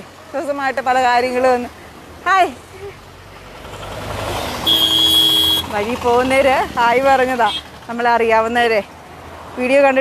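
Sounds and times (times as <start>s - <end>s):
road traffic: 0.0s - 10.0s
vehicle horn: 4.6s - 5.7s.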